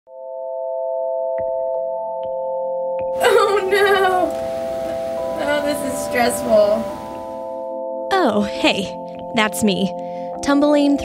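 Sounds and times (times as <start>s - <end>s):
electronic drone chord: 3.2s - 7.7s.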